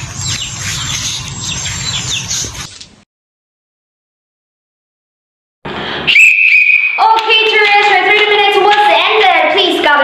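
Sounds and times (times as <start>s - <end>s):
hand whistle blast: 6.1s - 7.0s.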